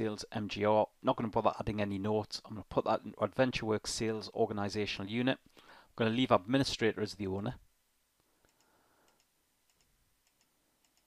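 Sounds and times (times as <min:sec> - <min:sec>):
computer mouse clicks: 0:08.4 - 0:11.0.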